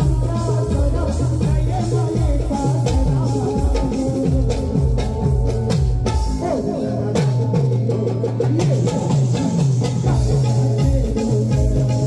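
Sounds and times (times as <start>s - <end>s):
bass line: 0.0s - 12.0s
keyboard melody with bending notes: 0.0s - 12.0s.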